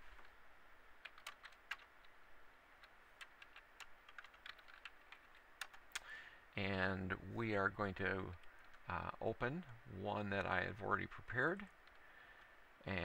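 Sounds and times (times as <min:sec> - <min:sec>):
computer keys clicking: 0:01.0 - 0:02.2, 0:02.8 - 0:06.1, 0:11.8 - 0:12.0.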